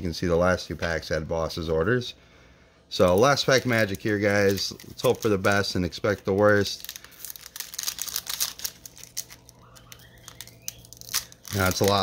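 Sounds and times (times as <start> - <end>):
foil wrapper crinkling and tearing: 3.0 - 12.0.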